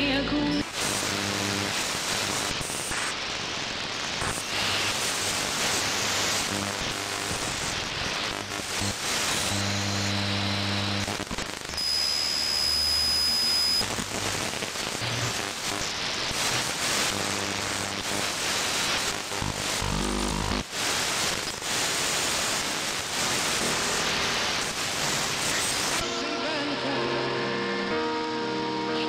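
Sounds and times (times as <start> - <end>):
radio station audio: 0.0 - 27.9
radio static hiss: 0.0 - 29.0.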